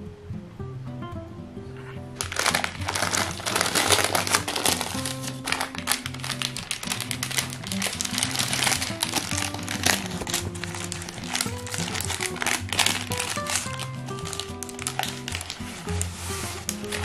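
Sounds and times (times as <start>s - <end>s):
background music: 0.0s - 17.0s
baking paper crinkling: 2.2s - 17.0s.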